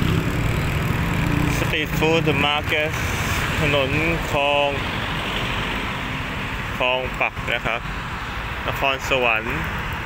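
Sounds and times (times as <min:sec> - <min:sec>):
street traffic: 0:00.0 - 0:10.0
man speaking: 0:01.5 - 0:04.9, 0:06.8 - 0:07.8, 0:08.7 - 0:09.7.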